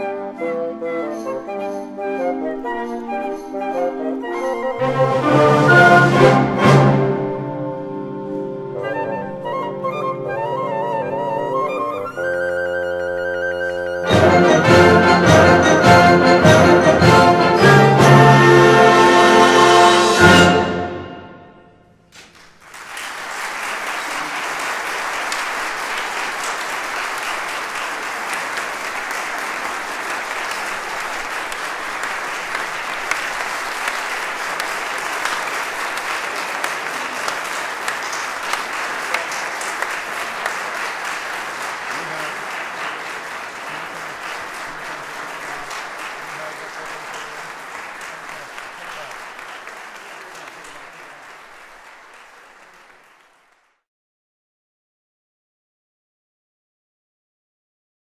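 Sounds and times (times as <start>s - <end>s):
audience applauding: 22.1s - 53.8s
individual claps and calls: 22.2s - 53.8s.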